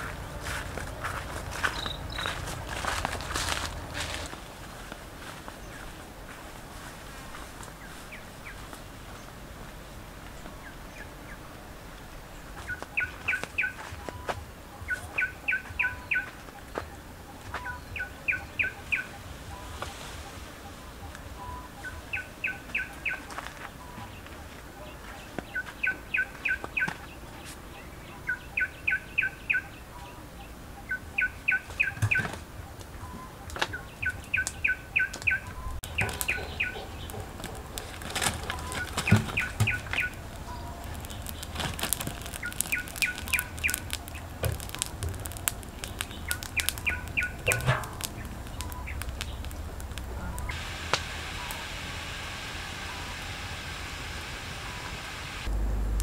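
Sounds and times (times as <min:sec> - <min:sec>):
bird chirping song: 0:00.0 - 0:50.6
steady hiss: 0:33.9 - 0:56.0
sharp clicks: 0:35.2 - 0:51.0.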